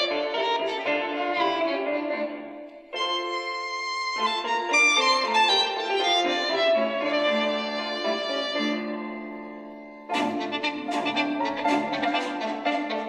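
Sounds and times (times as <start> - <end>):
violin music through small speaker: 0.0 - 13.0.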